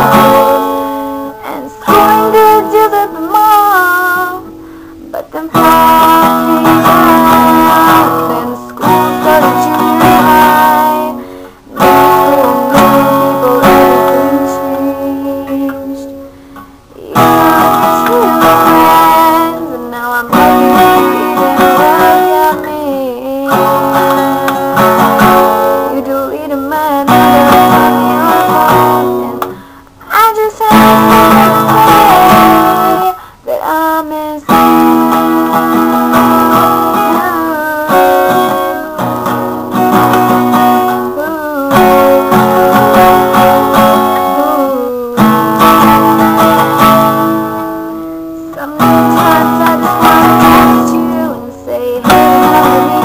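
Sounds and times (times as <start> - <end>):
acoustic guitar strumming: 0.0 - 53.0
girl singing: 0.0 - 53.0.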